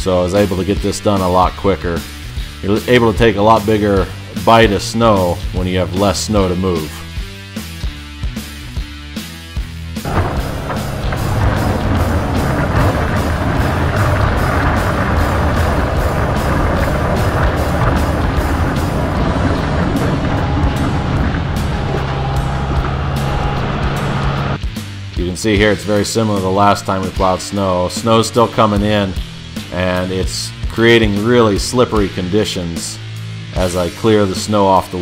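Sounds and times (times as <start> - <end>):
rock music with steady beat: 6.9 - 26.1
diesel tractor engine: 10.0 - 24.6
plow blade pushing snow: 10.0 - 24.6.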